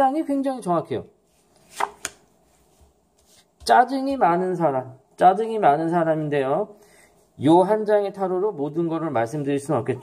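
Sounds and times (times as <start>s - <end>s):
card swishing: 1.4s - 3.4s
card clicking on table: 1.6s - 2.2s.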